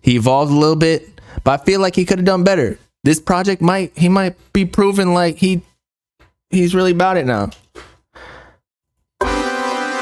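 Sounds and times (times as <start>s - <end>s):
breathy exhale: 8.1s - 8.6s
hip-hop track: 9.2s - 10.0s.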